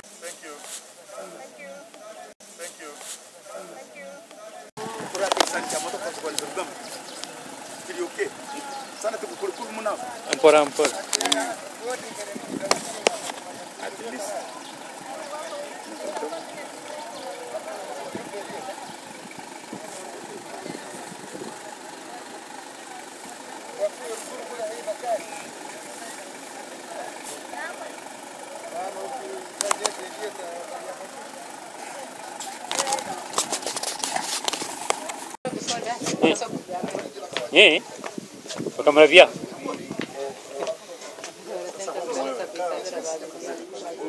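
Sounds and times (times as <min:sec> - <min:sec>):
crowd chatter outdoors: 0:00.0 - 0:44.0.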